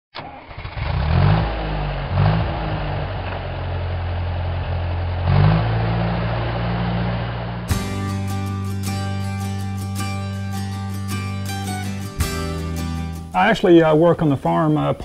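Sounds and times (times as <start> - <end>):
tractor engine revving: 0.2 - 13.8
acoustic guitar music: 5.3 - 15.0.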